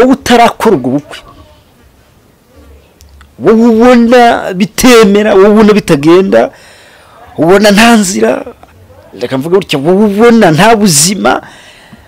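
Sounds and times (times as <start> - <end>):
person speaking: 0.0 - 1.8, 2.4 - 11.5.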